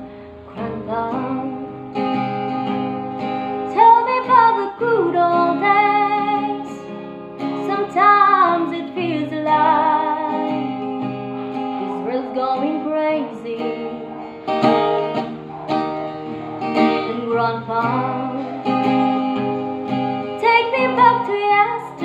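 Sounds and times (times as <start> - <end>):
strummed acoustic guitar: 0.0 - 22.0
woman singing: 0.5 - 14.8, 16.7 - 22.0.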